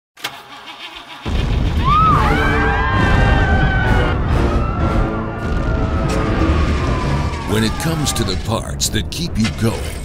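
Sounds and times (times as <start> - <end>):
car engine starting and running: 0.2 - 1.9.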